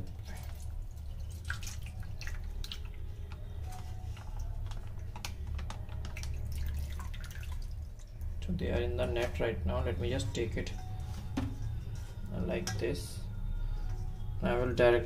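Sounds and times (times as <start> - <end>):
water dripping and splashing: 0.0 - 9.3
steady low hum: 0.0 - 15.0.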